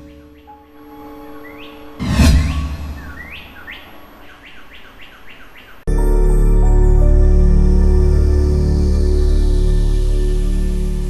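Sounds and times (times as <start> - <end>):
quick rising bird-like chirps: 1.4 - 5.8
deep impact hit: 2.0 - 3.6.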